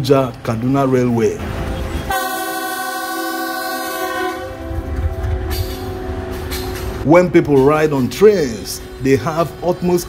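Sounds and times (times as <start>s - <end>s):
train rumbling past: 0.4s - 10.0s
locomotive air horn: 2.0s - 5.0s.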